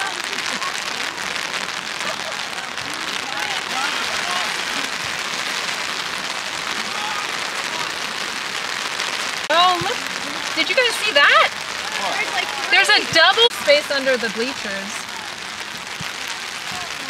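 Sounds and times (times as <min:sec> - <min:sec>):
steady rain falling: 0:00.0 - 0:17.0.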